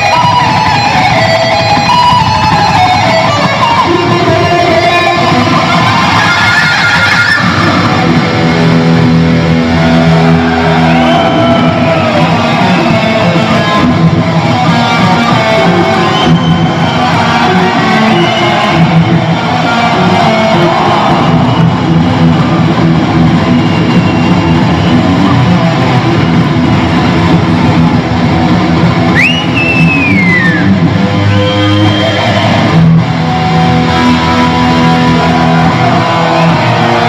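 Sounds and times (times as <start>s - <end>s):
electric guitar solo: 0.0s - 37.0s.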